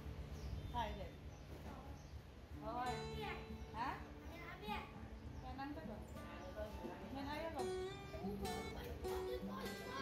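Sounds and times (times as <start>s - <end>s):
background music: 2.6s - 10.0s
children's voices: 7.6s - 10.0s.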